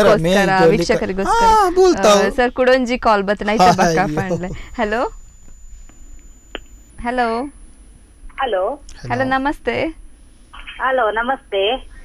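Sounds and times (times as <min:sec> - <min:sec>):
voice over telephone line: 0:00.0 - 0:02.5, 0:03.5 - 0:04.6, 0:09.0 - 0:09.9.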